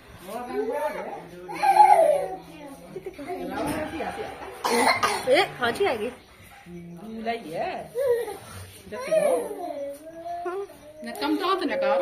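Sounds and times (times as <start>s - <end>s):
people talking: 0.2s - 12.0s
cough: 4.6s - 5.4s.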